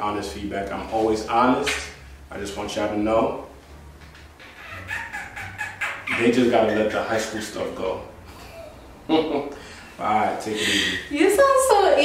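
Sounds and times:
person laughing high-pitched: 4.6s - 6.9s.

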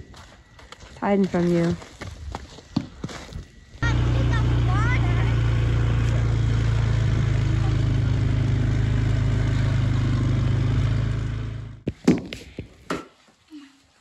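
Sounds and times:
atv engine humming: 3.8s - 11.8s.

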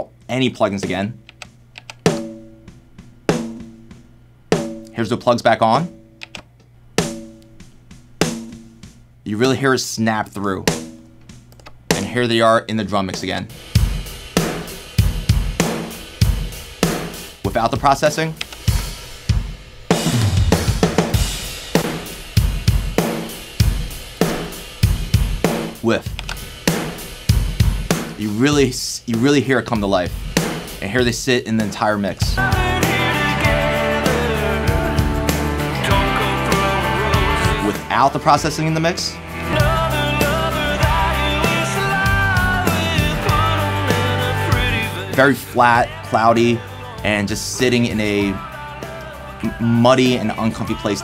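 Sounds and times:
rock drum beat: 0.0s - 6.2s, 7.0s - 9.6s, 10.5s - 51.0s.

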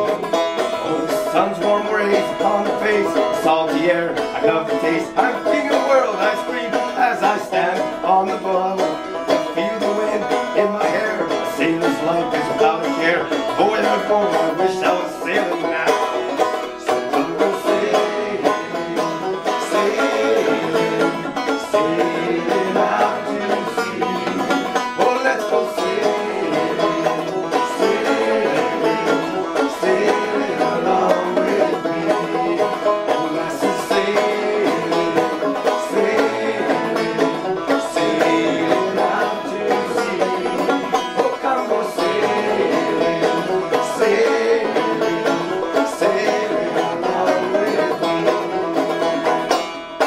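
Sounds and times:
banjo playing: 0.0s - 50.0s.

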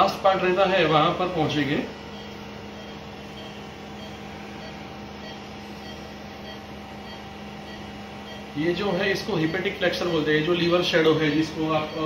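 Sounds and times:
room machinery humming: 0.0s - 12.0s.

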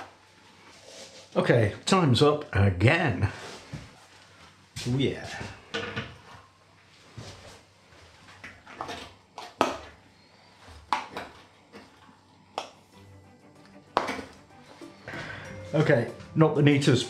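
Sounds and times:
quiet background music: 8.5s - 17.0s.

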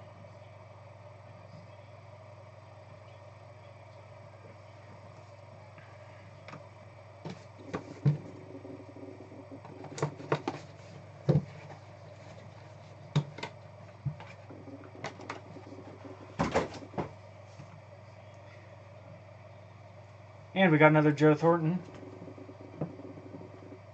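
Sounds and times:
steady low hum: 0.0s - 23.9s.

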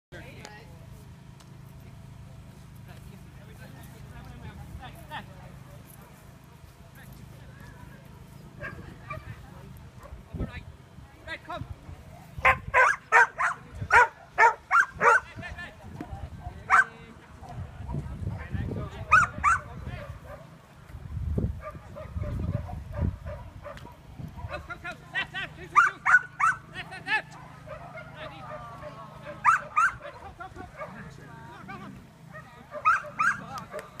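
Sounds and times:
dog barking excitedly: 12.4s - 15.4s, 16.4s - 17.0s, 19.1s - 20.5s, 21.6s - 24.6s, 25.7s - 31.1s, 32.3s - 34.0s.

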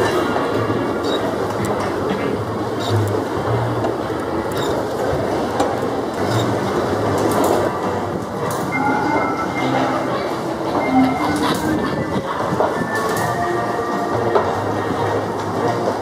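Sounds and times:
carousel rumble: 0.0s - 16.0s
music playing: 6.2s - 16.0s.

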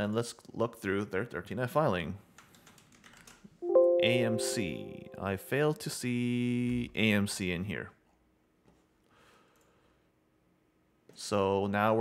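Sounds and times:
held musical chord: 3.6s - 5.7s.

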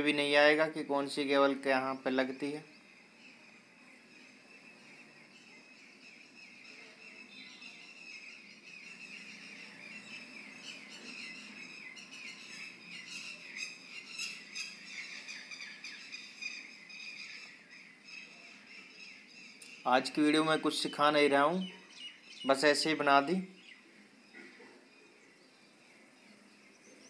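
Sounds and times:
small birds chirping: 0.0s - 27.0s.

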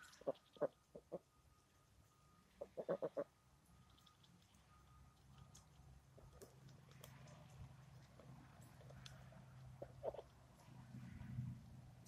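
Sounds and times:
ducks quacking: 2.6s - 3.3s.

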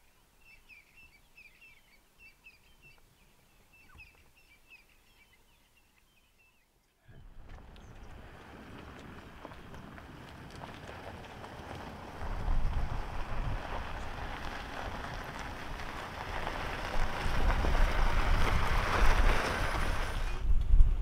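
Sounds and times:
low engine rumble: 7.1s - 21.0s
tyres crunching on gravel: 7.2s - 20.5s.

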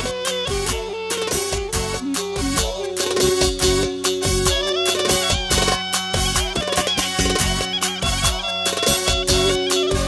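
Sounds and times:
live band playing dance music: 0.0s - 10.0s.

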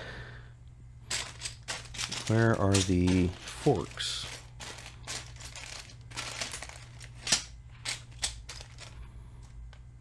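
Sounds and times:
plastic bags crinkling: 1.1s - 9.0s.

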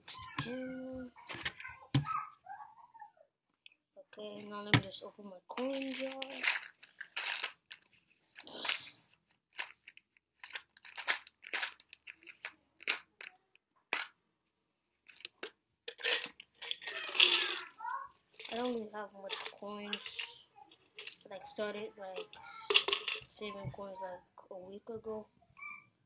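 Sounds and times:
coins rattling in jar: 5.6s - 7.6s, 10.4s - 13.0s, 15.9s - 17.8s, 18.4s - 21.4s, 22.2s - 23.5s.

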